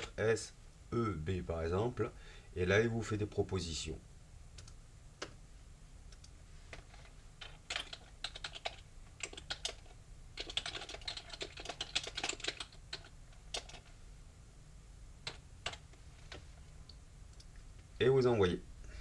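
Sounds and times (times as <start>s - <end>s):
typing on computer keyboard: 6.9s - 13.9s, 15.2s - 16.4s.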